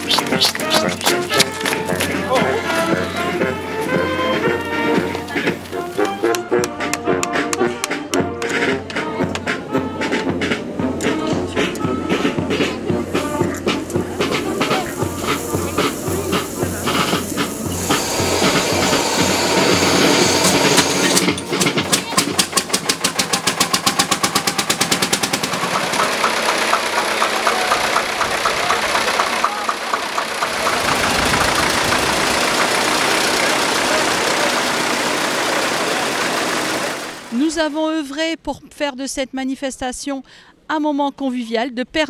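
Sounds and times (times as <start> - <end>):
tractor engines running: 0.0 - 38.3.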